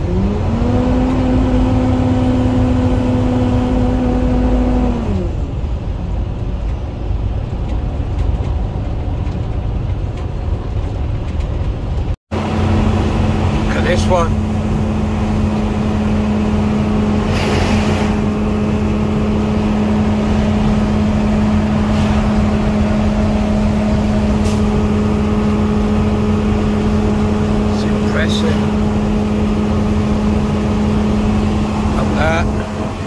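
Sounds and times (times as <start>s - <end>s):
truck engine and road drone: 0.0s - 33.0s
passing truck whoosh: 12.3s - 33.0s.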